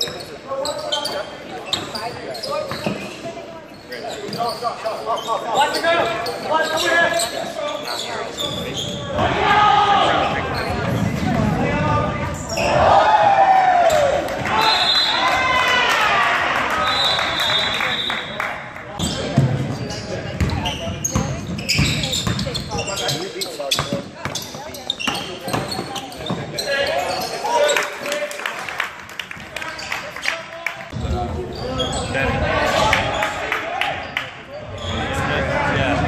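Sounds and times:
sneakers squeaking: 0.0s - 9.3s, 10.0s - 13.0s, 19.0s - 28.0s, 29.4s - 36.0s.

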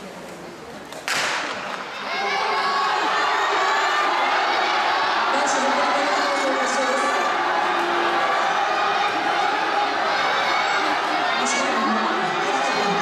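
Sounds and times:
crowd cheering and shouting: 1.2s - 13.0s.

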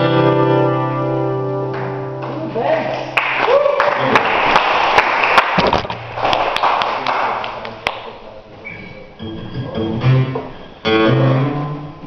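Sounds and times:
audience applause: 3.1s - 8.1s.

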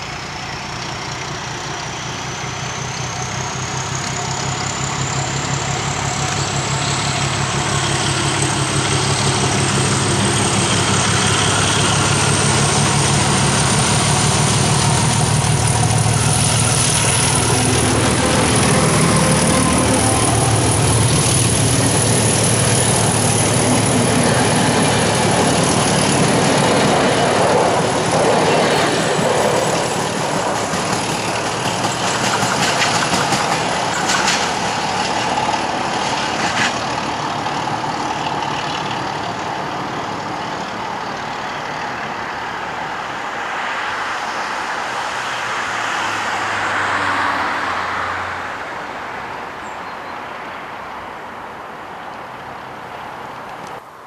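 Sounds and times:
diesel locomotive engine whining: 0.0s - 43.5s
train coaches rumbling by: 0.0s - 54.0s.

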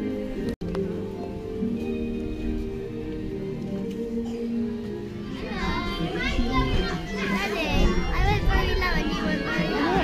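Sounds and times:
background music: 0.0s - 10.0s
children chattering and calling: 2.5s - 10.0s.

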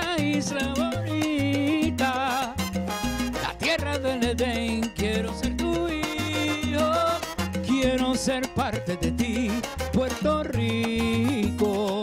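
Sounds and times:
man singing: 0.0s - 2.7s, 3.4s - 12.0s
salsa band playing: 0.0s - 12.0s.

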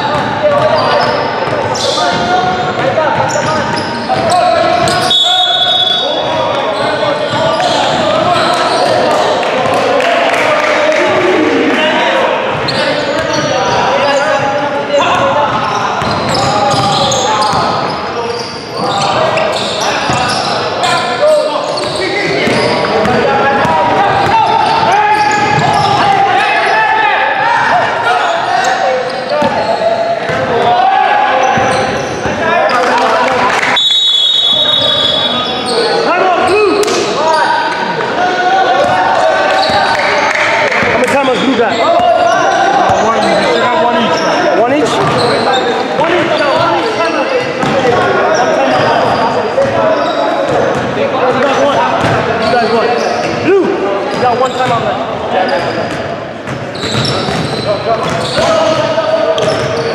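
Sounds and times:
echoing voices in a hall: 0.0s - 59.9s
referee's whistle: 3.4s - 6.2s, 33.6s - 35.8s.

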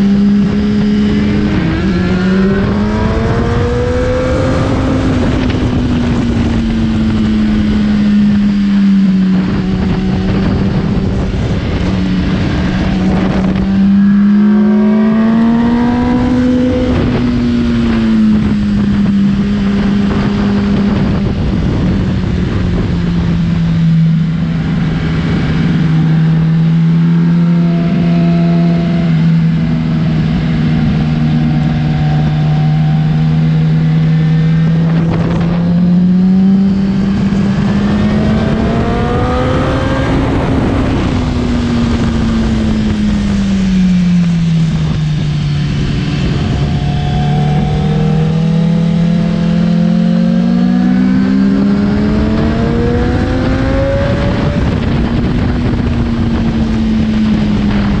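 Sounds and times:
motorcycle engine at speed: 0.0s - 58.0s
wind noise: 0.0s - 58.0s.

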